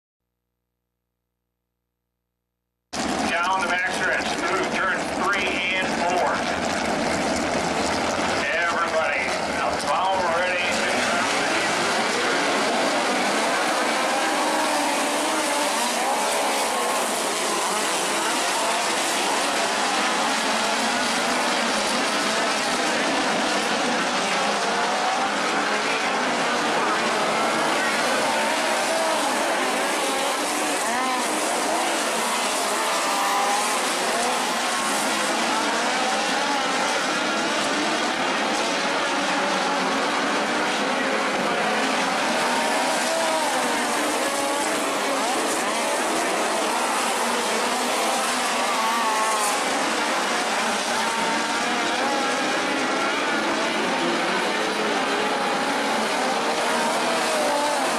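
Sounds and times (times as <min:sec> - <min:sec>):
race car engines droning: 0:03.0 - 0:57.9.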